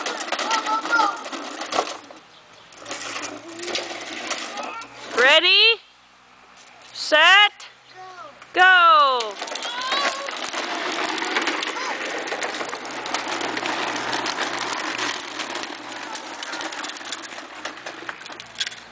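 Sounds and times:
toy wheels rolling on concrete: 0.0s - 5.8s, 8.2s - 18.9s.

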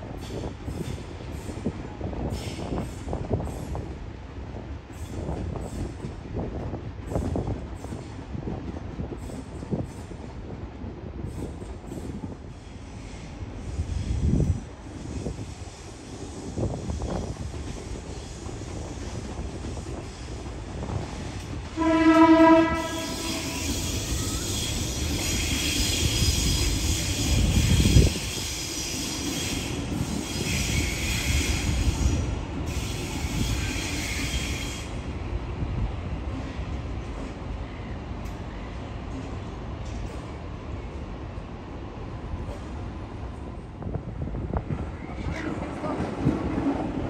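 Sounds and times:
train wheel squeal: 0.1s - 3.9s, 4.9s - 6.1s, 7.1s - 8.2s, 11.2s - 35.0s, 44.8s - 46.0s
train horn blast: 21.7s - 26.6s.

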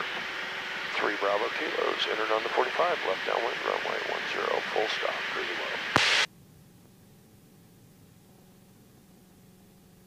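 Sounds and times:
radio static burst: 2.2s - 6.3s
radio click: 5.9s - 6.3s.

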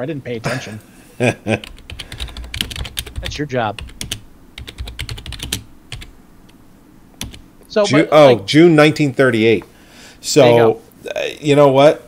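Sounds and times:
typing on computer keyboard: 1.6s - 6.1s, 7.2s - 7.4s.

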